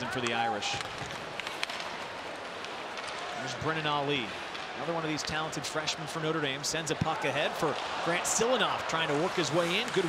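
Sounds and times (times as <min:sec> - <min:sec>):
crowd noise: 0:00.0 - 0:10.0
skating on ice: 0:00.5 - 0:05.5, 0:07.6 - 0:10.0.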